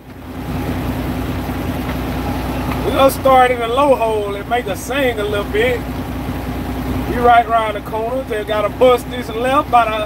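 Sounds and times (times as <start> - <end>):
diesel truck engine humming: 0.0 - 10.0.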